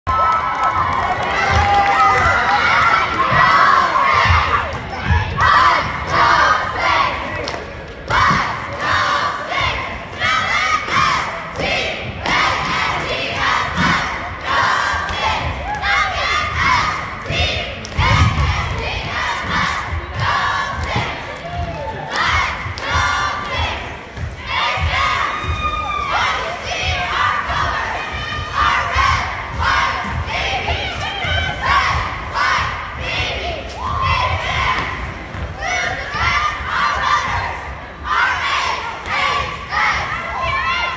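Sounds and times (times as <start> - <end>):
crowd noise: 0.0 - 40.9
cheerleaders chanting in unison: 0.2 - 40.9.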